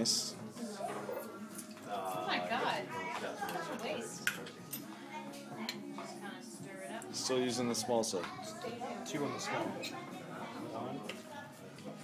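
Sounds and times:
background conversation: 0:00.0 - 0:12.0.

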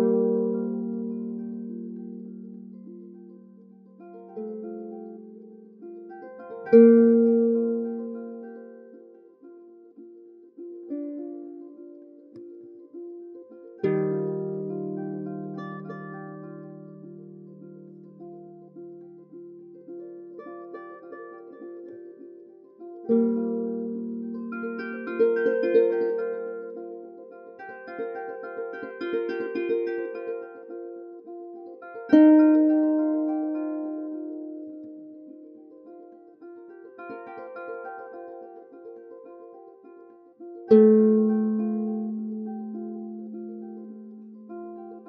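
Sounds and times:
harp plucked notes: 0:00.0 - 0:45.0
low harp chord: 0:00.0 - 0:45.0.

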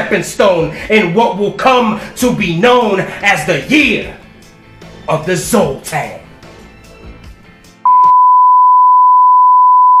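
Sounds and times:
test-card tone beep: 0:07.9 - 0:10.0.

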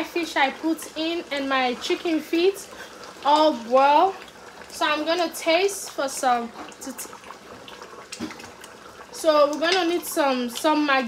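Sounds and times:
sauce bubbling in a pot: 0:00.0 - 0:11.0.

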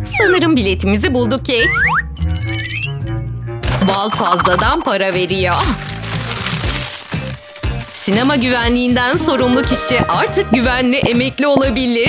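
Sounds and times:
coins jingling: 0:03.7 - 0:09.8.

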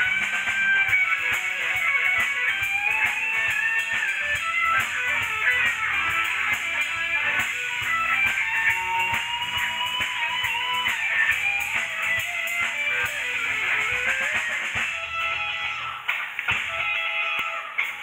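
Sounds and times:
drums: 0:00.0 - 0:18.0
electric guitar wavering melody: 0:00.0 - 0:18.0.

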